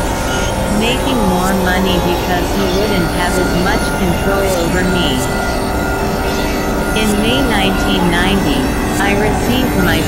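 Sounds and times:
synthesizer drone: 0.0 - 10.0.

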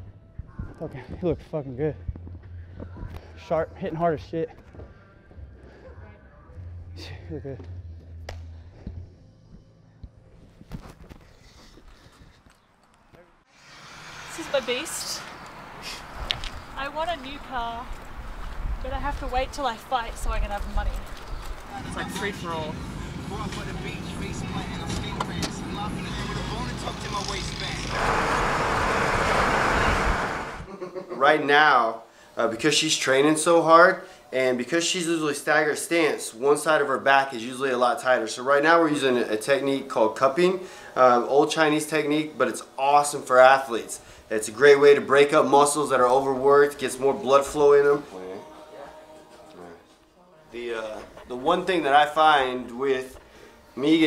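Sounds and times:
car engine and road rumble: 21.6 - 30.7
loud rushing noise: 21.7 - 30.7.

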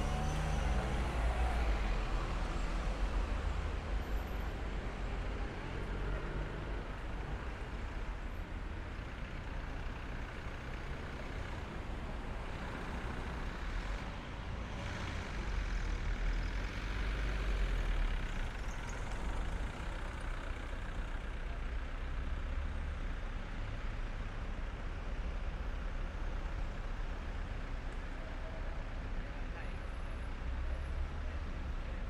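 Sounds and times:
road traffic rumble: 0.0 - 32.0.

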